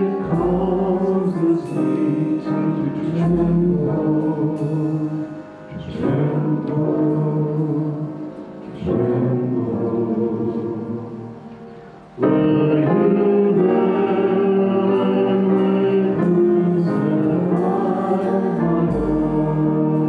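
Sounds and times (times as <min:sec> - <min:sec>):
praise band and singers: 0:00.0 - 0:20.0.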